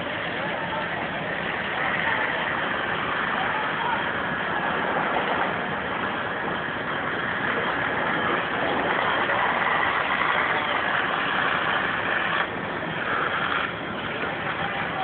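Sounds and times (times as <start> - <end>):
fire engine droning: 0.0 - 15.0.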